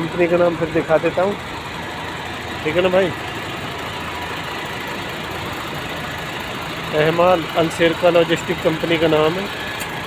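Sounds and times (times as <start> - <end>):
truck engine idling: 0.0 - 10.0.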